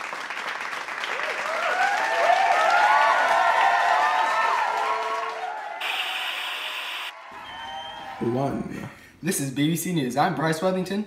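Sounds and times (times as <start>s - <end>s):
tv static hiss: 5.8s - 7.1s.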